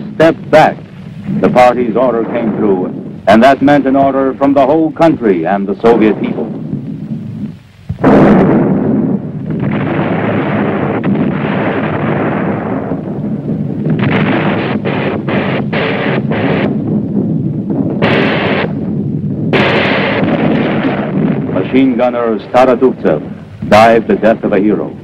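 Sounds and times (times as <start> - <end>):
explosions with rumble: 0.0 - 25.0
bursts of gunfire: 7.9 - 24.6.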